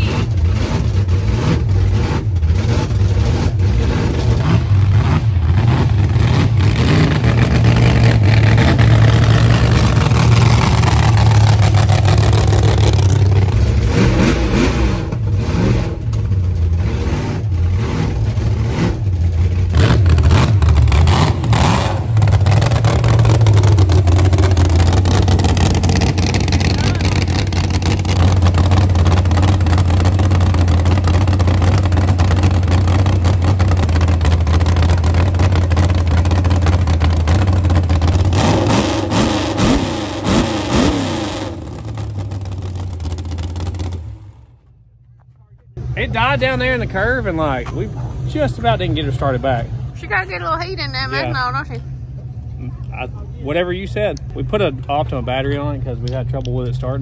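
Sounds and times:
drag car engine revving and idling: 0.0s - 57.0s.

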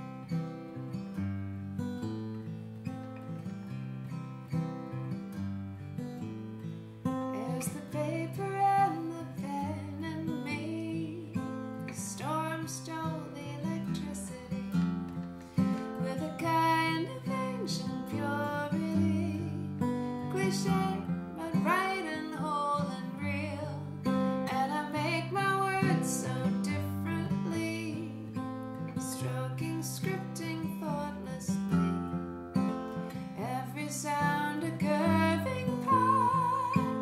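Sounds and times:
acoustic guitar playing: 0.0s - 37.0s
woman singing: 7.3s - 32.2s, 33.0s - 37.0s.

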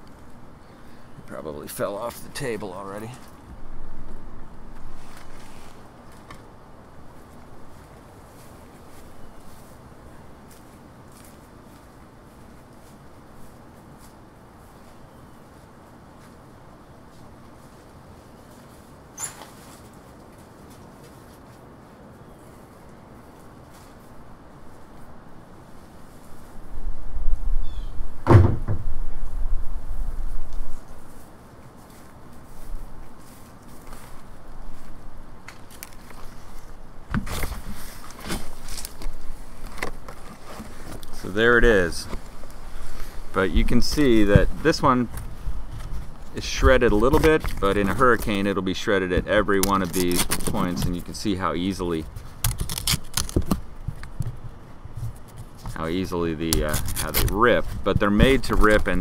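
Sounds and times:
loud knock: 28.2s - 29.0s
leaf rustling and handling knocks: 28.2s - 29.3s, 30.4s - 48.5s, 49.1s - 59.0s.

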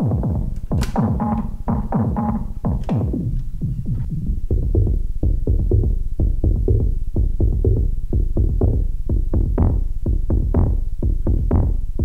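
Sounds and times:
synth kick-like drum hits: 0.0s - 12.0s.

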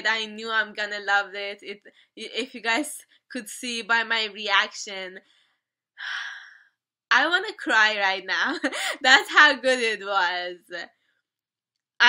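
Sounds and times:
woman speaking: 0.0s - 5.2s, 6.0s - 6.5s, 7.1s - 10.9s.

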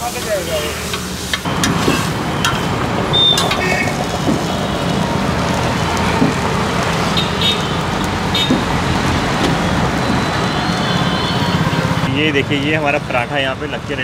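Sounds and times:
road traffic: 0.0s - 14.0s
high-pitched tones: 9.6s - 12.1s.

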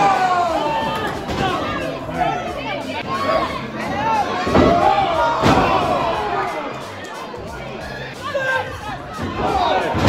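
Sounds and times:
crowd shouting: 0.0s - 7.1s, 8.1s - 10.0s.

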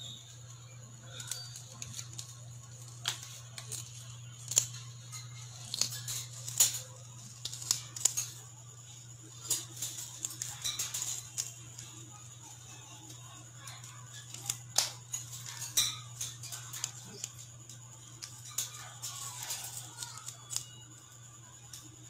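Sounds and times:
steady low hum: 0.0s - 22.0s
parrot crunching food: 0.1s - 21.7s.

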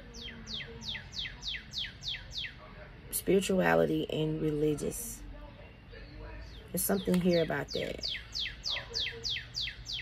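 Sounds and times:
songbird whistling: 6.8s - 10.0s.

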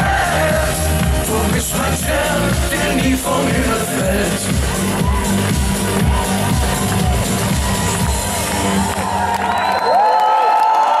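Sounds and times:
crowd cheering: 0.0s - 2.5s, 3.2s - 11.0s
live pop band playing: 0.0s - 8.0s.

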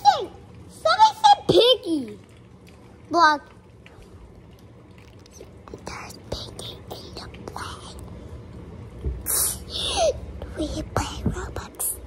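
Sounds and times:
child whispering: 5.7s - 8.0s, 9.3s - 12.0s.

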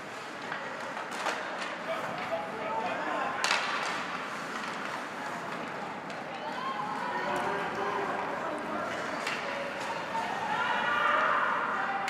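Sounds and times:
spectators' voices: 0.0s - 12.0s
skates scraping on ice: 3.3s - 10.5s.

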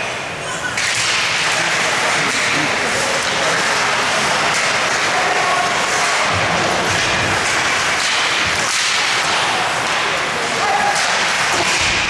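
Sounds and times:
crowd noise: 0.0s - 12.0s
faint raised voices: 0.4s - 8.0s.

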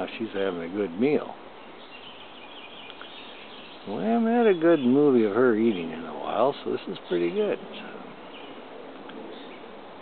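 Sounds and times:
distant small birds chirping: 0.0s - 10.0s
low hiss: 0.0s - 10.0s.

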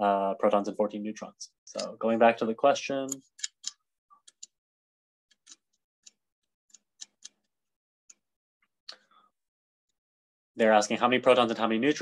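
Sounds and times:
computer mouse clicks: 3.1s - 4.6s, 5.3s - 7.5s.

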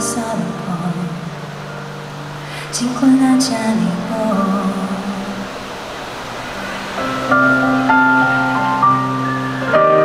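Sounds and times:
instrumental backing music: 7.0s - 10.0s.

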